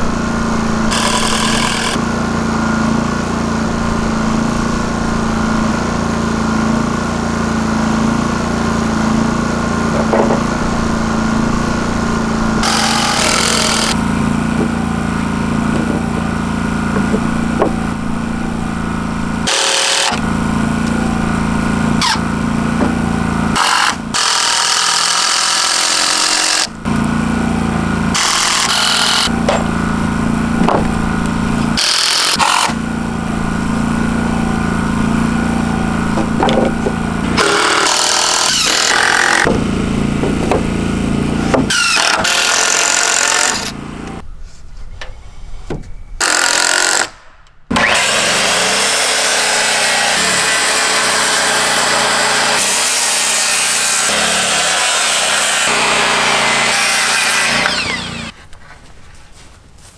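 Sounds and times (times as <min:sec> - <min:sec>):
circular saw cutting board: 0:00.0 - 0:44.2, 0:47.7 - 0:58.4
power tools working on lumber: 0:00.0 - 0:44.2, 0:46.2 - 0:58.4.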